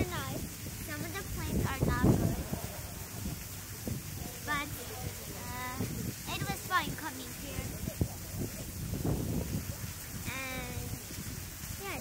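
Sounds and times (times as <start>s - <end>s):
child's high-pitched drawn-out voice: 0.0s - 2.2s, 5.4s - 7.6s, 10.3s - 11.0s, 11.8s - 12.0s
wind rumble on microphone: 0.0s - 12.0s.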